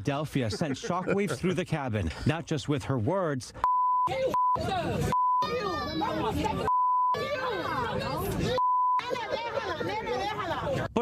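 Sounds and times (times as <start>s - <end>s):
censor bleeps: 3.6s - 5.6s, 6.7s - 7.2s, 8.6s - 9.0s
woman shouting: 5.4s - 10.7s.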